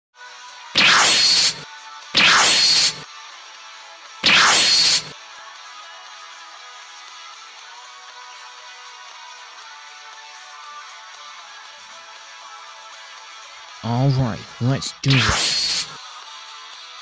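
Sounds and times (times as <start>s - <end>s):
whoosh sound effects: 0.8s - 1.6s, 15.0s - 16.0s.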